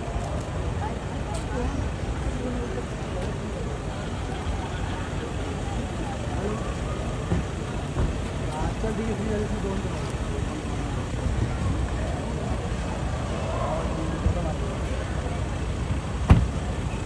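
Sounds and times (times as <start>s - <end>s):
car engines idling: 0.0s - 17.0s
faint voices: 0.0s - 17.0s.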